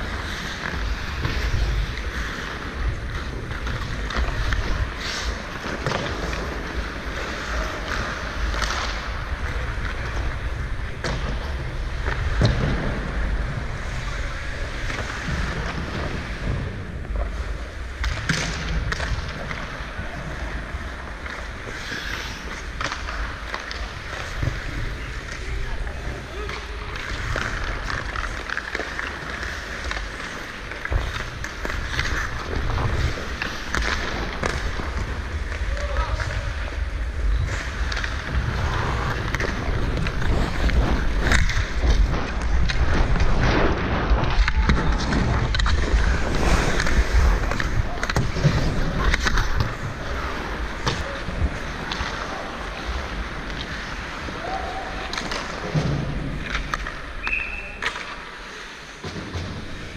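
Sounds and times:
hockey sticks and puck clacking: 0.0s - 59.9s
ice skates scraping on ice: 0.0s - 59.9s.

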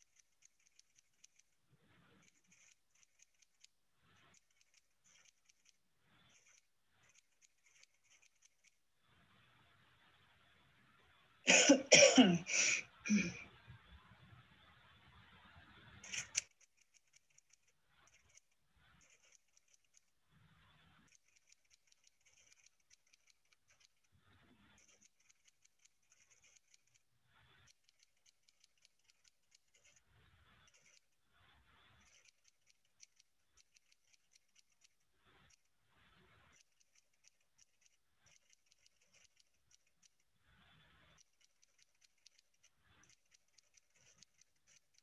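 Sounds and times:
typewriter-style clicks: 2.1s - 8.8s, 16.0s - 20.1s, 21.0s - 24.0s, 24.6s - 30.0s, 36.5s - 40.2s, 41.1s - 45.0s
person coughing: 11.5s - 13.4s.

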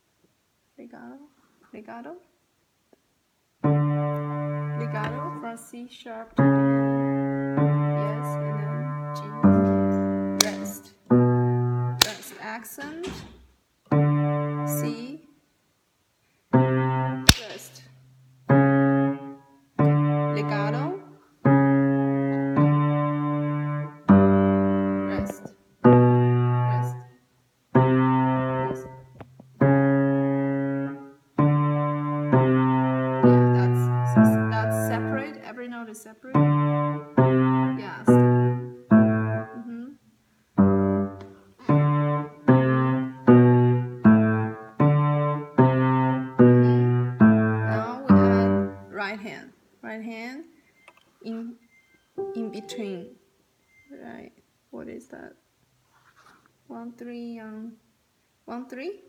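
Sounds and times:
slow piano notes and chords: 3.6s - 5.5s, 6.4s - 12.1s, 13.9s - 14.9s, 18.5s - 27.0s, 27.8s - 35.4s, 36.3s - 39.6s, 40.6s - 48.9s, 52.2s - 53.2s.

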